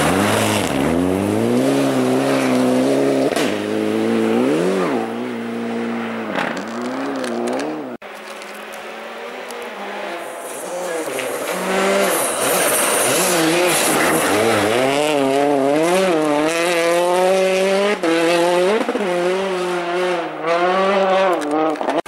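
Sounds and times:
rally car engine at high revs: 0.0s - 22.0s.

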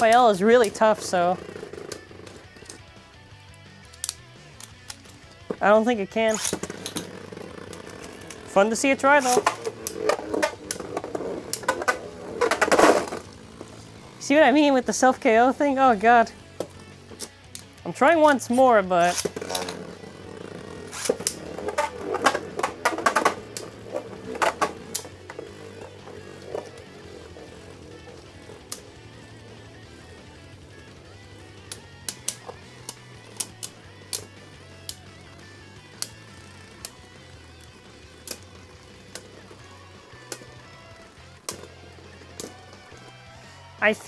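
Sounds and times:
spinning top whir: 6.3s - 15.2s, 19.0s - 43.2s.

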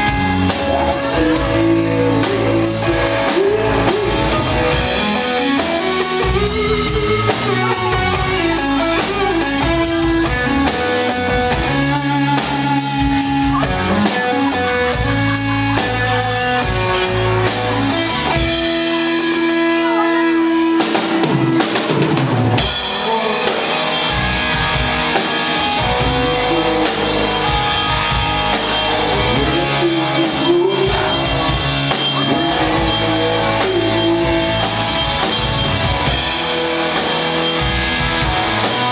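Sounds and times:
bass guitar: 0.0s - 38.9s
drum kit beat: 0.0s - 38.9s
electric guitar: 0.0s - 38.9s.

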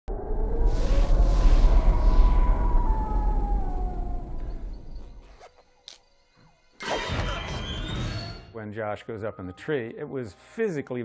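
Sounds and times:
whooshing swell: 0.1s - 5.2s
heavy low rumble: 0.1s - 5.3s
eerie sliding tones: 0.1s - 5.6s.

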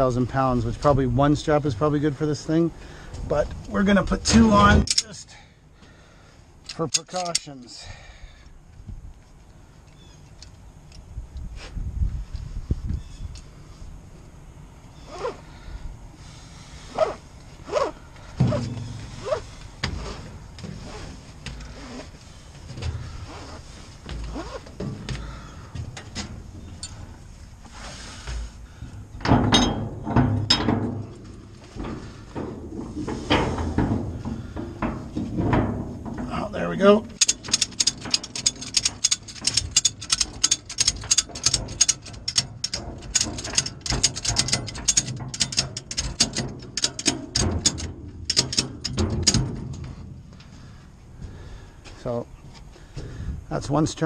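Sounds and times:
strap webbing scraping: 15.0s - 15.5s, 16.8s - 28.8s
ratchet handle clicking: 37.2s - 49.4s.

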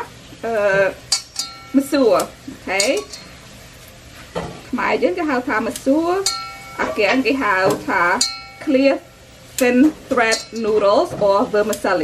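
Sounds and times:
woman talking: 0.4s - 1.0s, 1.7s - 3.2s, 4.7s - 12.0s.

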